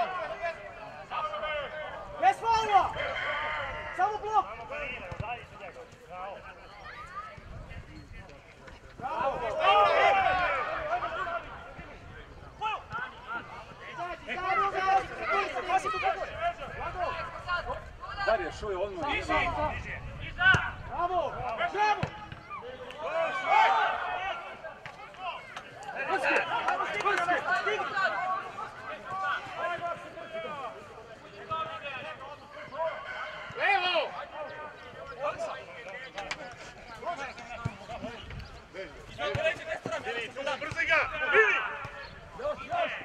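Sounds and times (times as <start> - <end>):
people shouting and calling out: 0.0 - 7.9, 8.7 - 43.0.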